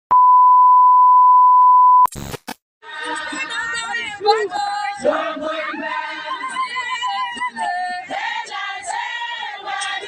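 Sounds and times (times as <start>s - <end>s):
electronic test-tone beep: 0.1s - 2.1s.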